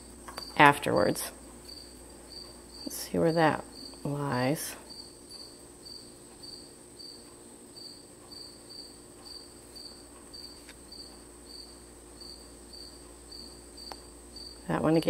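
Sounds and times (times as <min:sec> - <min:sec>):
faint high-pitched hum: 0:00.0 - 0:15.0
cricket chirping: 0:00.1 - 0:15.0.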